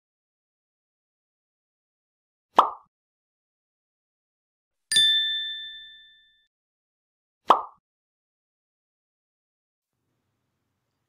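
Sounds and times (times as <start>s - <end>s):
two-tone chime ding: 4.9s - 6.5s.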